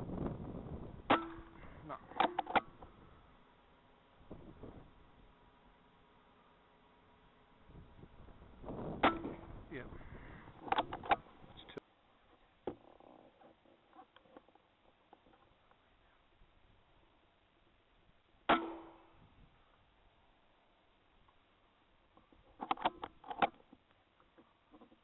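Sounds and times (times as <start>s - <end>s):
sharp knocks: 9.0s - 9.5s.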